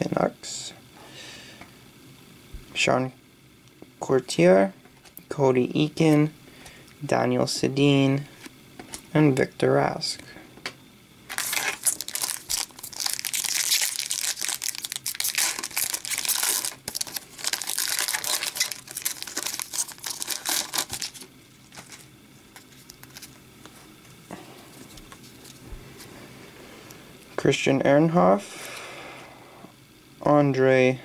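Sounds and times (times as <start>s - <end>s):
wrapper crinkling: 11.3s - 23.8s
handling of cards: 11.3s - 26.1s.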